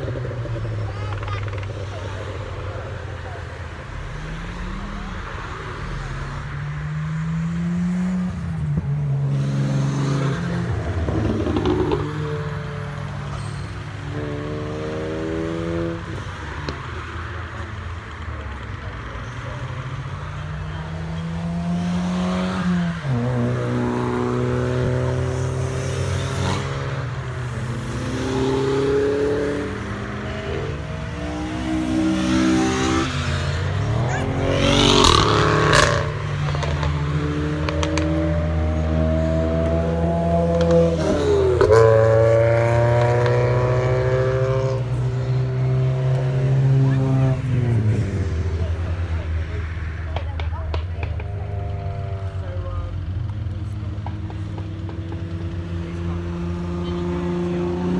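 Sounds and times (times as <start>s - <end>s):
race car engines accelerating: 0.0s - 57.9s.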